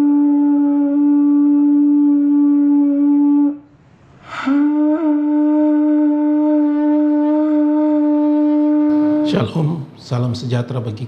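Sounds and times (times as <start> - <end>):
conch shell trumpet note: 0.0 - 3.7, 4.3 - 9.5.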